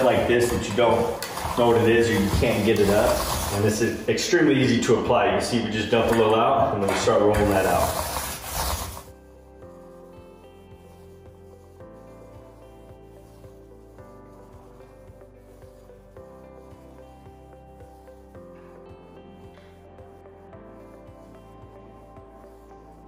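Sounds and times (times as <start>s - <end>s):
background music with light beat: 0.0s - 23.0s
paint roller rubbing on floor: 0.0s - 23.0s.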